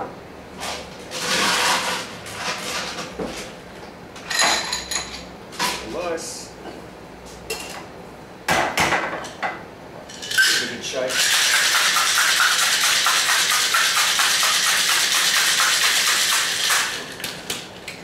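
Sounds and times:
shaker shaken with ice: 10.2 - 17.3
ice cubes clattering into glass: 10.3 - 17.0.

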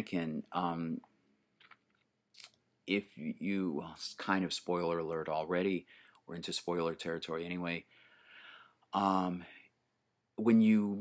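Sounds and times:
man speaking: 0.0 - 1.1, 2.4 - 7.9, 8.9 - 9.7, 10.4 - 11.0.

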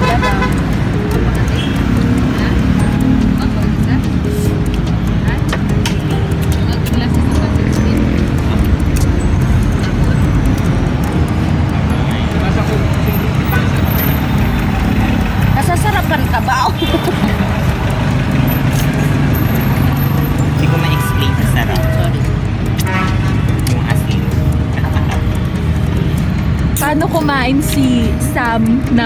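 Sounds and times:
background music: 0.0 - 29.0
scattered voices: 0.0 - 29.0
vehicle rumble inside cabin: 0.0 - 29.0.

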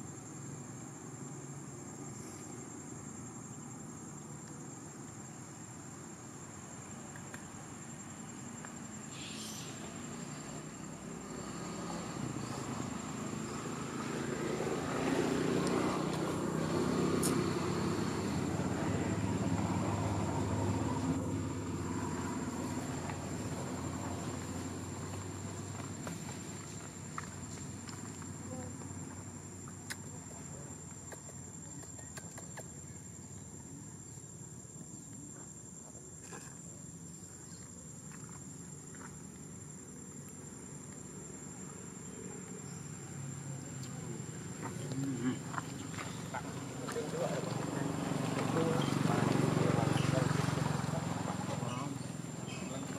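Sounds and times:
high-pitched insect drone: 7.5 - 29.7.

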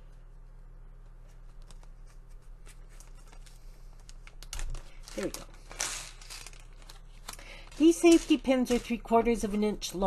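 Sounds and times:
plastic bag crinkling: 1.6 - 10.0.

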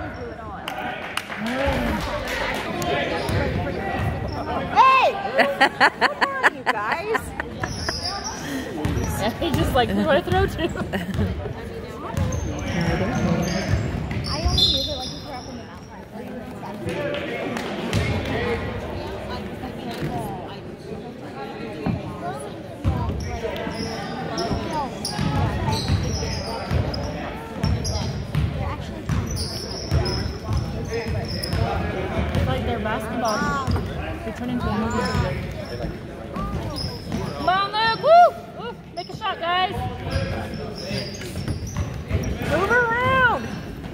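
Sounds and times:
distant voices in a hall: 0.0 - 43.9
sneakers squeaking: 2.7 - 5.0, 6.5 - 16.3, 22.8 - 43.9.

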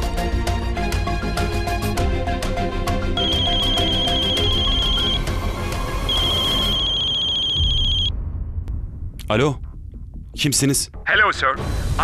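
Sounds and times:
dramatic music with strong beats: 0.0 - 12.0
mobile phone ringing: 3.2 - 5.5, 6.1 - 8.1.

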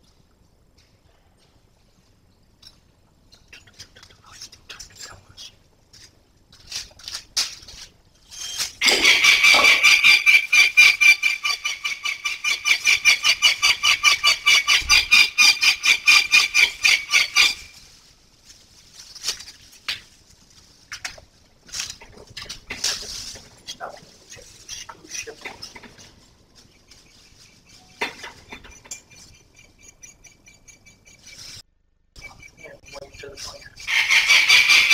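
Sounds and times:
young falcon harsh repeated calls: 8.3 - 17.7, 33.8 - 34.9.

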